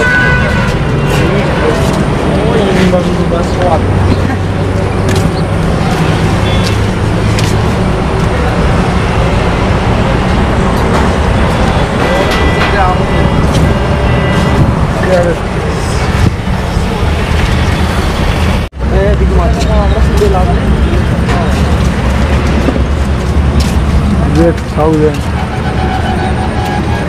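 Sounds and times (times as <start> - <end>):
people talking: 1.0 - 6.7, 8.0 - 17.2, 18.8 - 22.0, 24.2 - 25.3.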